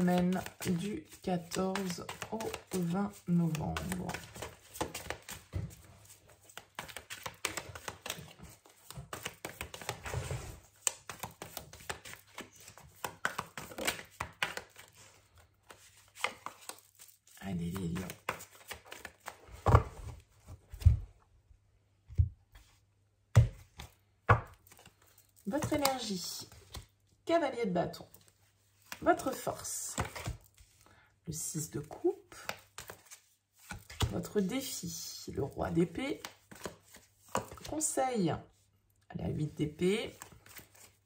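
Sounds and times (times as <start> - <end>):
cards being shuffled: 0.0 - 21.0, 23.4 - 27.0, 28.1 - 30.8, 31.9 - 37.9, 39.7 - 41.0.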